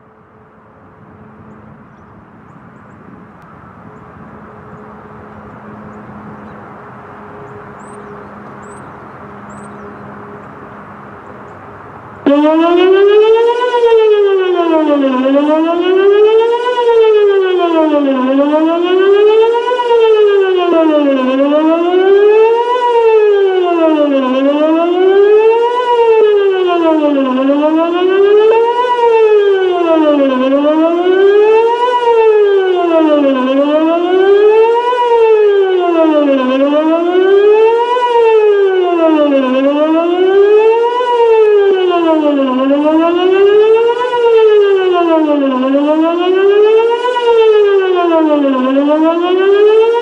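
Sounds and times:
warning siren sweeping up and down: 0:00.0 - 0:50.0.

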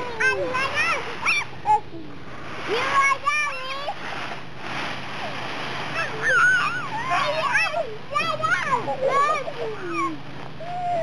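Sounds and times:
children squealing: 0:00.2 - 0:01.8, 0:05.9 - 0:11.0
dry leaves rustling: 0:02.3 - 0:11.0.

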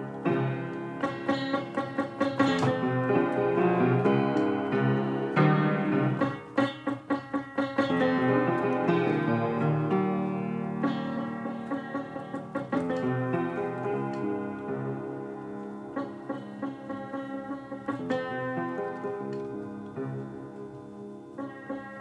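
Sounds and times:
solo piano playing: 0:00.0 - 0:22.0.

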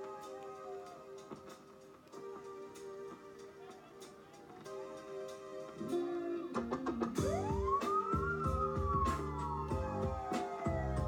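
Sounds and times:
held keyboard notes: 0:00.0 - 0:11.0
drum hits: 0:06.6 - 0:11.0
siren-like gliding tone: 0:07.2 - 0:11.0.

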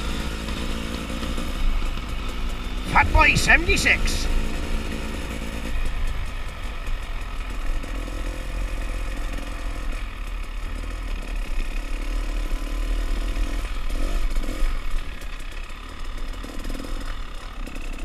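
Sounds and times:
motorcycle engine running: 0:00.0 - 0:18.0.

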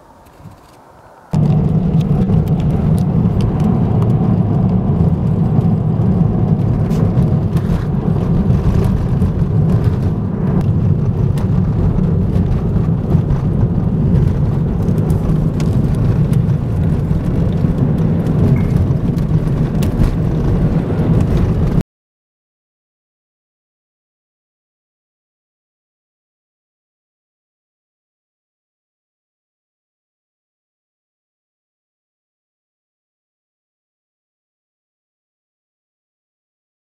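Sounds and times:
low rumble of tyres and engine: 0:00.0 - 0:21.8.

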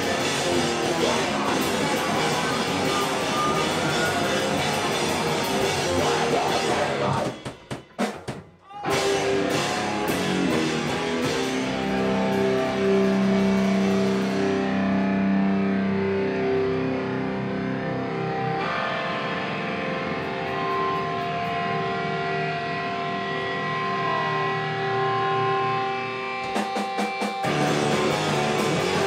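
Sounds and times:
distorted electric guitars: 0:00.0 - 0:29.0.

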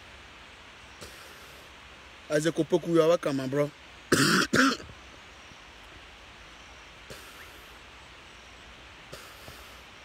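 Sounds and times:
faint background hiss: 0:00.0 - 0:10.0
man coughing: 0:04.1 - 0:04.8.

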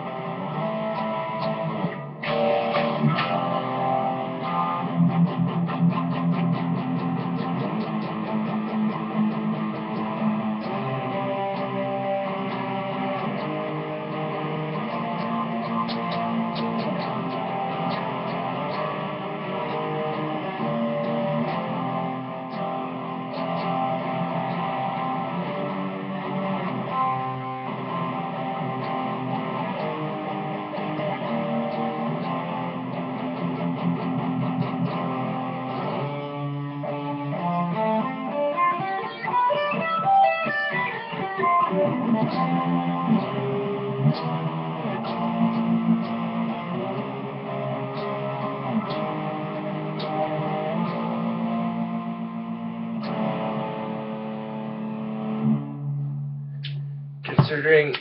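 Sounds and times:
guitar playing: 0:00.0 - 0:58.0.

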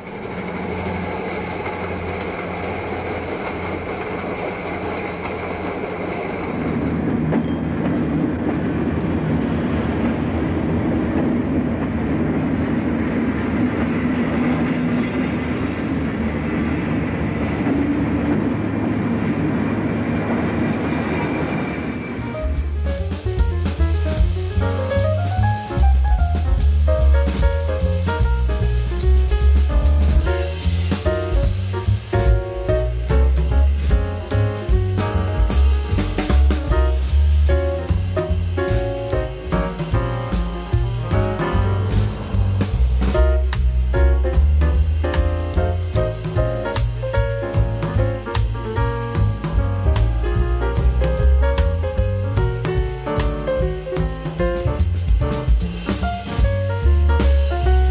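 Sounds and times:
train engines rumbling: 0:00.0 - 0:57.9
train wheels rolling: 0:00.0 - 0:57.9
music with drums: 0:22.1 - 0:57.9.

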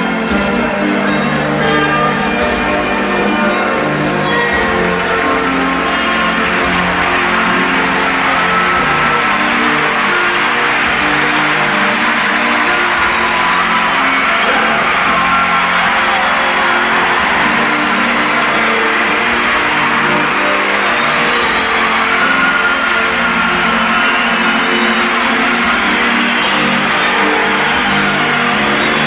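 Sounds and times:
crowd cheering: 0:00.0 - 0:29.0.

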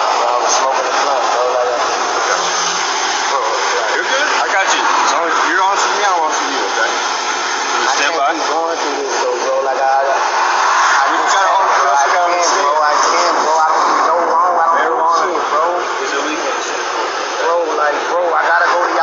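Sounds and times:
men talking: 0:00.0 - 0:19.0.

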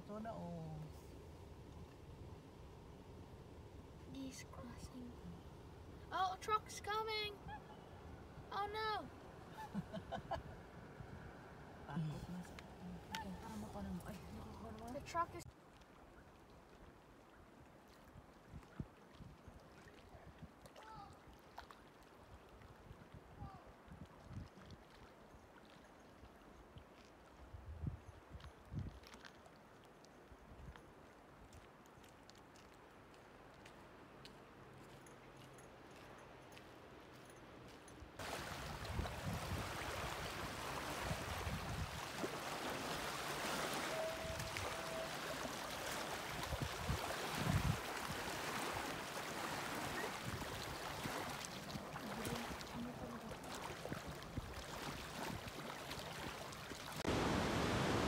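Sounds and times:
rush of wind and water: 0:06.1 - 0:33.4, 0:38.2 - 0:58.0
wind buffeting microphone: 0:38.4 - 0:42.1, 0:46.3 - 0:48.2.

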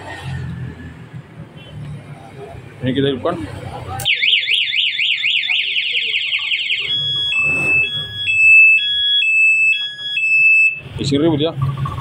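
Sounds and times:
motorcycle alarm siren: 0:04.0 - 0:12.0.

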